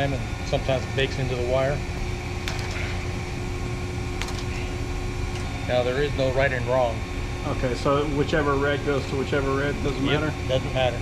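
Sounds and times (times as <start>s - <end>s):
industrial machinery humming: 0.0s - 11.0s.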